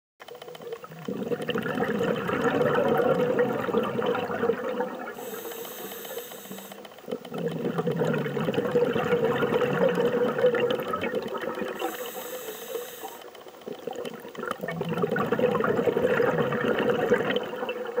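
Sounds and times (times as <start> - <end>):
underwater bubbles gurgling: 0.2 - 18.0
faint hiss of inhalation: 5.2 - 6.9, 11.8 - 13.2.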